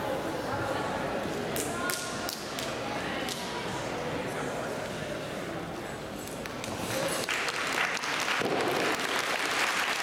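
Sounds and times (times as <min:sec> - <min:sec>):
murmur of chatter: 0:00.0 - 0:09.0.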